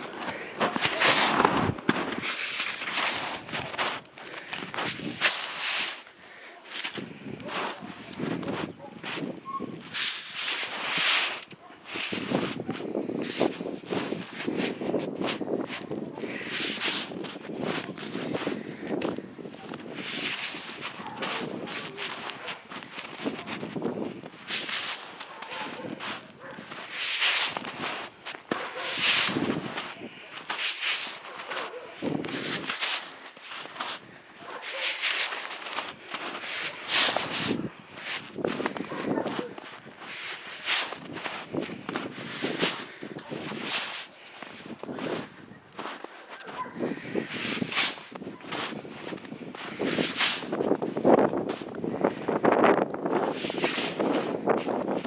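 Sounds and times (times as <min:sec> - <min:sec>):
snowshoe steps crunching in snow: 0:00.0 - 0:52.5, 0:53.1 - 0:55.0.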